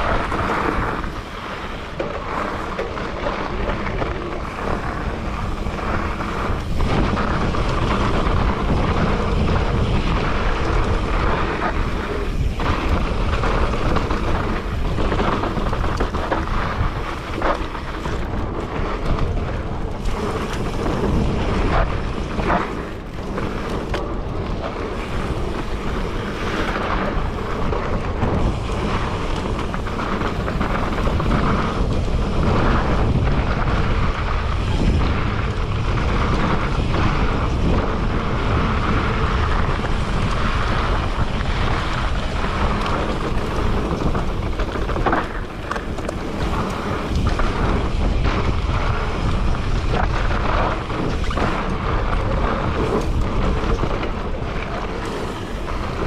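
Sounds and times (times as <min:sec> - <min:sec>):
bike knocks and rattles: 0:00.0 - 0:56.0
wind buffeting microphone: 0:00.0 - 0:56.0.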